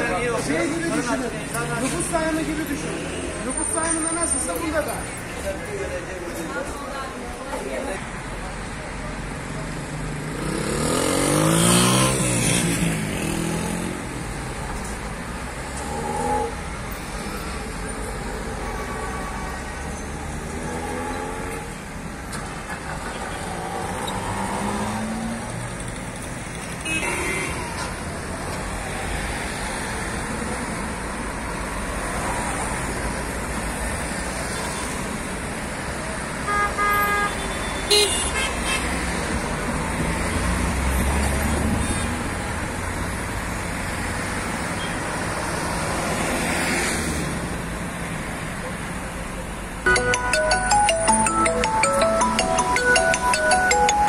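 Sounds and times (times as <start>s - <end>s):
cars driving past: 9.5s - 27.0s, 38.8s - 49.0s
car horn: 26.8s - 27.8s, 36.4s - 39.0s
music: 49.9s - 54.0s.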